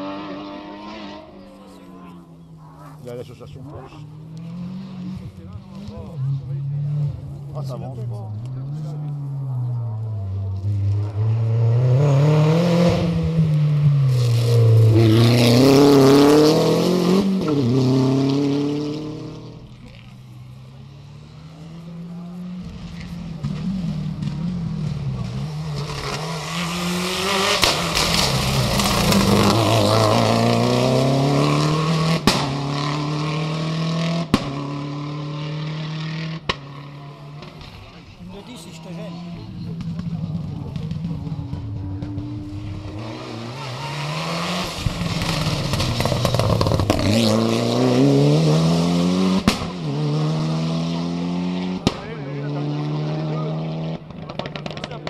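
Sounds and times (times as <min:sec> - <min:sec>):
rally car engines revving: 0:00.0 - 0:55.0.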